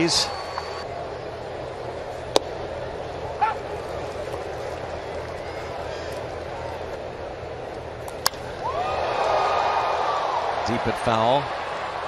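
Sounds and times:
baseball bat cracking a ball: 2.3 - 2.6, 8.0 - 8.6.

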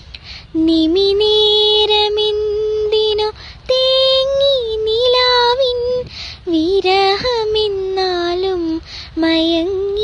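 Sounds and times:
singer breathing: 0.0 - 0.6, 3.3 - 3.7, 6.0 - 6.5, 8.8 - 9.2
young woman singing: 0.1 - 10.0.

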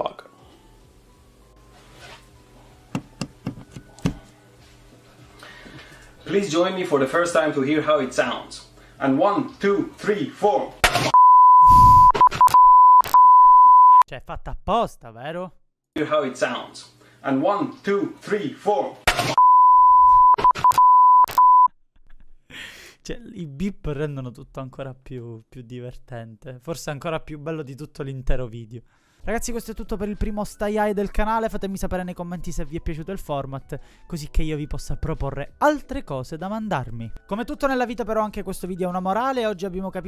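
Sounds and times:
high censor beep tone: 11.1 - 14.0, 19.4 - 21.7.

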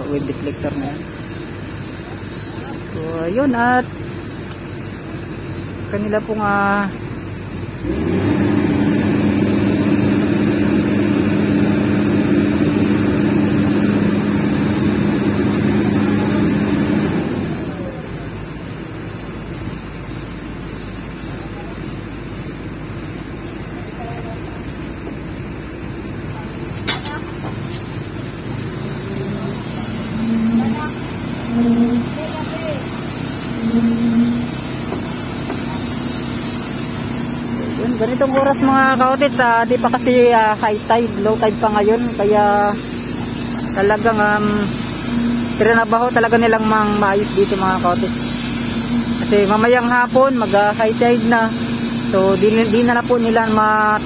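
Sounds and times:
excavator diesel engine running: 0.0 - 54.0.

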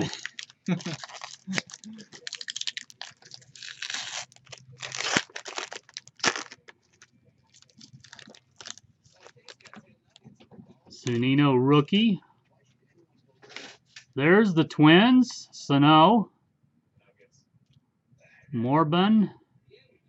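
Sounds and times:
foil wrapper tearing and crinkling: 0.0 - 9.8.

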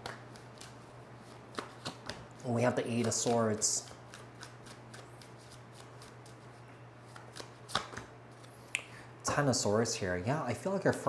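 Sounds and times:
cards being shuffled: 0.0 - 8.6.

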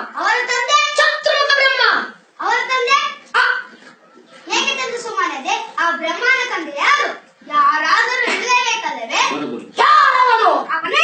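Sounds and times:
boy speaking loudly: 0.0 - 3.8, 4.4 - 11.0.

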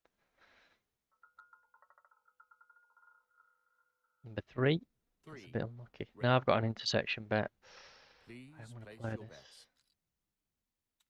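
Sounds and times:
roulette ball clattering: 1.2 - 3.9.

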